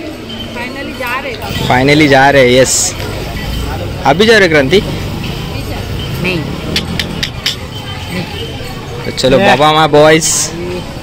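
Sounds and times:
faint voices: 0:00.0 - 0:11.0
vehicle engine rumbling: 0:01.0 - 0:09.3.

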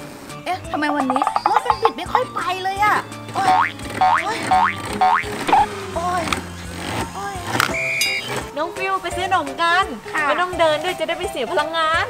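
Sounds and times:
background music: 0:00.0 - 0:12.0
cartoon boing glides: 0:00.7 - 0:02.0, 0:03.5 - 0:05.7
short steady beep: 0:07.8 - 0:08.4.

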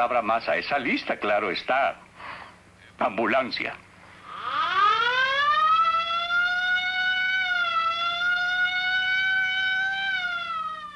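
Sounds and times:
ambulance siren wailing: 0:04.3 - 0:10.9.

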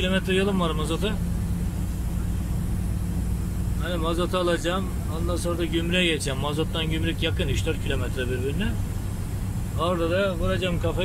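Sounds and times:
constant low hum: 0:00.0 - 0:11.0
lorry diesel engine drone: 0:00.0 - 0:11.0
tyres on road: 0:00.0 - 0:11.0.

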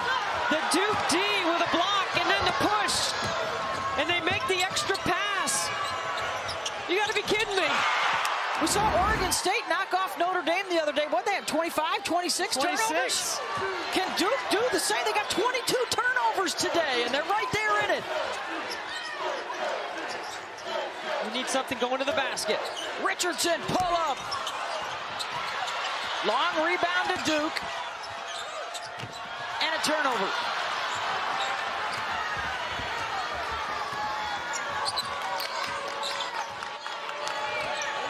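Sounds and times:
arena crowd noise: 0:00.0 - 0:38.0
sneaker squeaks on hardwood: 0:05.7 - 0:06.9, 0:24.1 - 0:26.2, 0:27.8 - 0:29.4, 0:34.5 - 0:36.6.

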